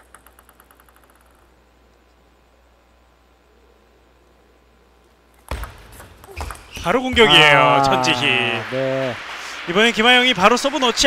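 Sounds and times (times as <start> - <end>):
table tennis ball clicks: 0.0 - 1.5, 5.3 - 6.9
man commentating: 6.8 - 11.0.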